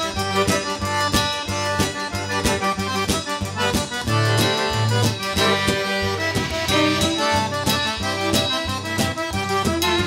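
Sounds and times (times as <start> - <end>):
bass: 0.0 - 10.0
button accordion melody: 0.0 - 10.0
drum beat: 0.0 - 10.0
fiddle: 0.0 - 10.0
guitar: 0.0 - 10.0.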